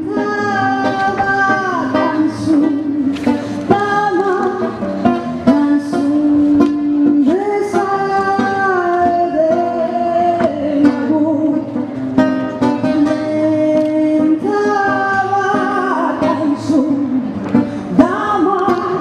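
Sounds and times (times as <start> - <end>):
woman singing: 0.0 - 11.9, 12.7 - 19.0
plucked acoustic guitar: 0.0 - 19.0.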